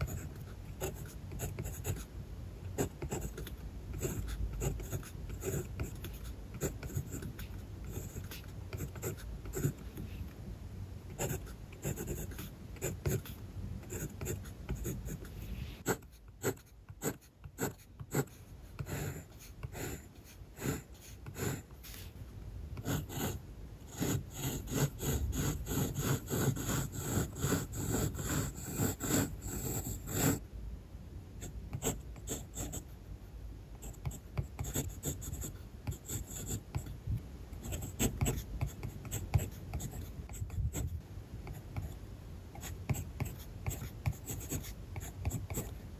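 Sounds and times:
pencil scratching on paper: 0:00.0 - 0:02.1, 0:02.7 - 0:10.2, 0:11.1 - 0:22.2, 0:22.8 - 0:30.4, 0:31.4 - 0:32.9, 0:33.8 - 0:36.9, 0:37.6 - 0:42.0, 0:42.6 - 0:45.8.

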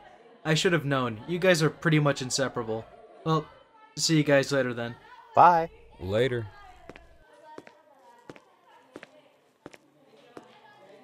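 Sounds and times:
murmur of background chatter: 0:00.0 - 0:11.0
footsteps on hard floor: 0:06.8 - 0:07.7.

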